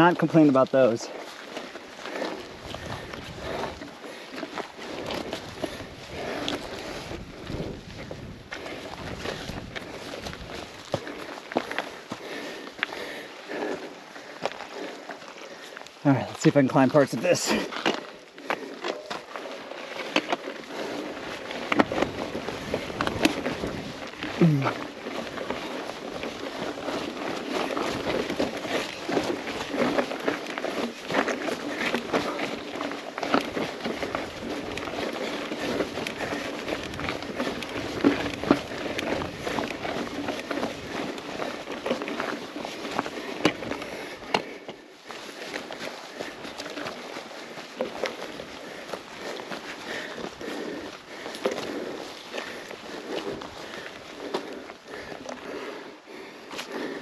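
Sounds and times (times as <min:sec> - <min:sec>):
bike rattling: 0:00.0 - 0:57.0
rider breathing hard: 0:00.0 - 0:57.0
tyres crunching over gravel: 0:00.0 - 0:57.0.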